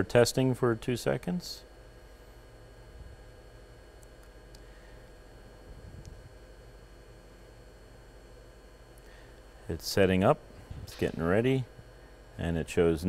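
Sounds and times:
network equipment humming: 0.0s - 13.0s.

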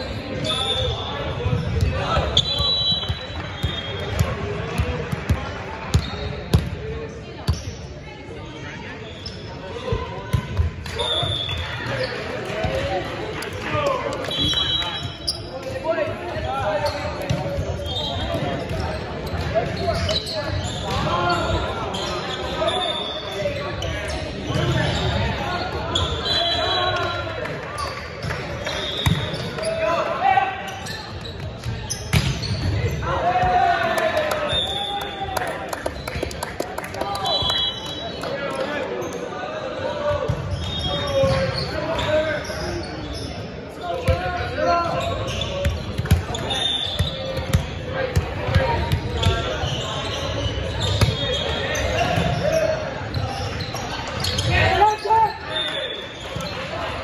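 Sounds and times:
voices calling out in a hall: 0.0s - 57.0s.

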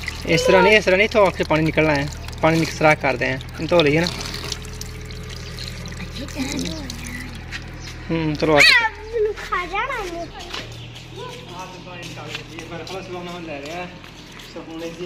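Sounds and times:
tap water running onto hands: 0.0s - 8.4s, 13.6s - 15.0s
coconut being washed: 0.0s - 9.0s, 12.0s - 15.0s
people talking: 0.2s - 4.2s, 6.1s - 7.4s, 8.1s - 14.0s.

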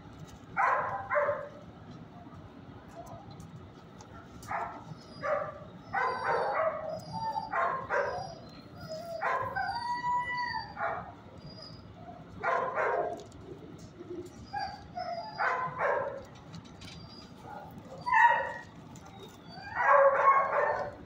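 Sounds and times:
dogs barking: 0.6s - 1.6s, 4.2s - 13.4s, 14.3s - 16.4s, 17.3s - 21.0s.

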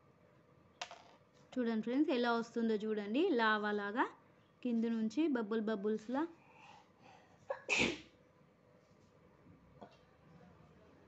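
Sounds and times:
person sneezing: 7.5s - 8.1s.

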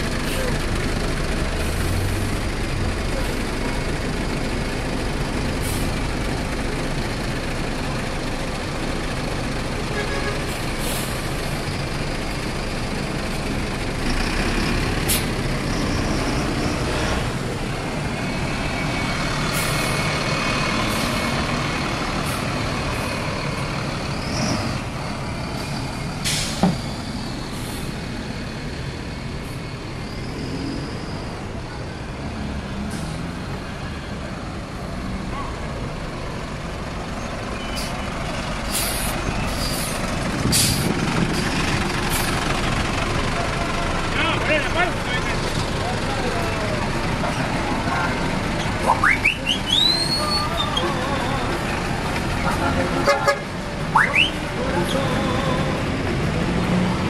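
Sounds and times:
bus engines rumbling: 0.0s - 57.0s
air brake hisses: 26.2s - 26.7s, 38.7s - 40.9s.

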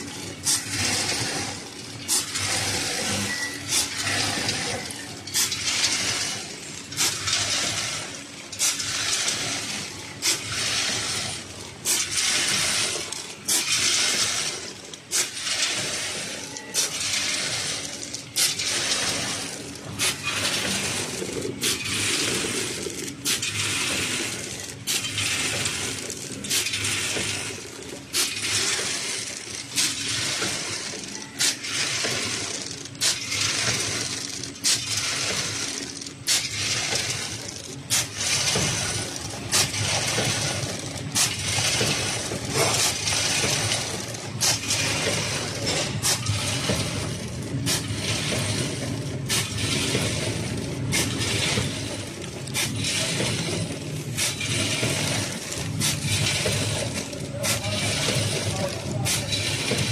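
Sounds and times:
packaging machine strokes: 0.0s - 59.9s
popcorn rattling: 0.0s - 59.9s.

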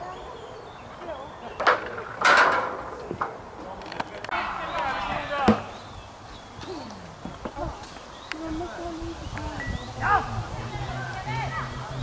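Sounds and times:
people talking: 0.0s - 2.0s, 6.6s - 12.0s.

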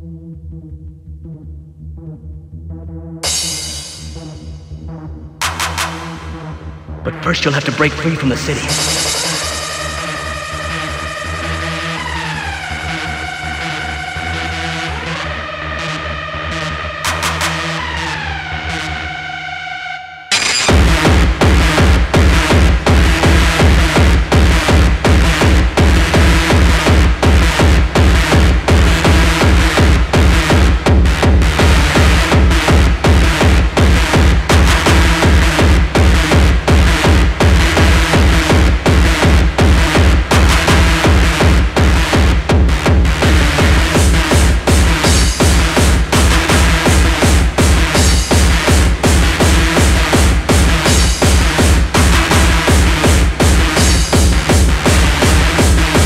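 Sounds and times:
synths: 0.0s - 56.0s
fast kick drum: 20.7s - 56.0s.

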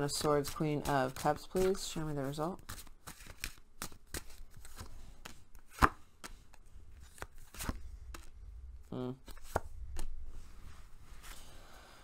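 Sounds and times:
cards being shuffled: 0.0s - 8.4s, 9.2s - 10.3s
soft rustle of cards: 0.0s - 12.0s.

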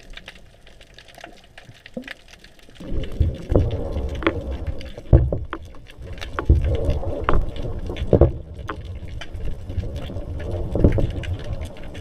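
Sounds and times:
low underwater water rumble: 0.0s - 12.0s
sharp clicks and knocks: 3.3s - 8.9s.

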